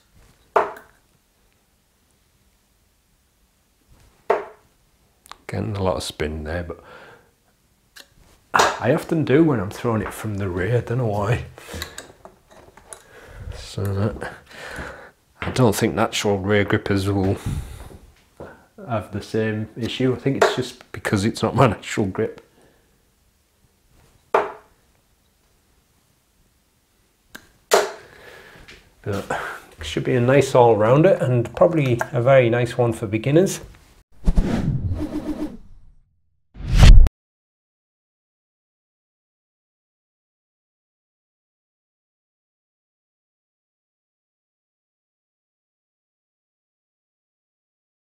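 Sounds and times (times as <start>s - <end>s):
dart striking dartboard: 0.6s - 0.9s, 4.3s - 4.6s, 24.4s - 24.7s, 27.7s - 28.0s.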